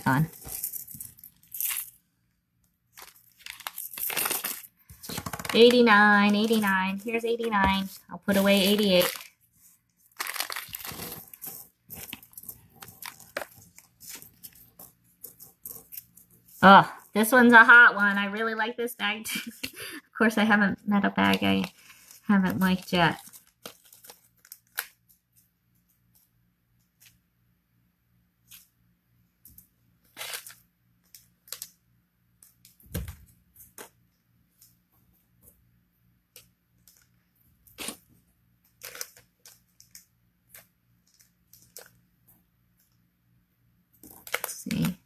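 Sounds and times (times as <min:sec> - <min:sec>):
plastic bag crinkling: 0:02.9 - 0:16.7, 0:21.3 - 0:24.9.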